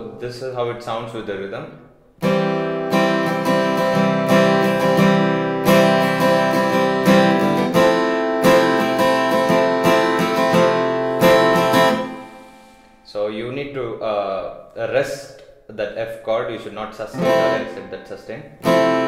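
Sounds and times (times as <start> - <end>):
acoustic guitar strumming: 2.2 - 13.0, 17.1 - 19.0.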